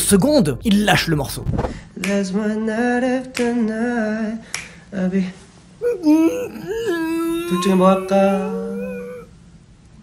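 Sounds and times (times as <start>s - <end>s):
finger snaps: 2.0s - 2.3s, 4.4s - 4.8s
man singing long notes: 5.8s - 9.3s.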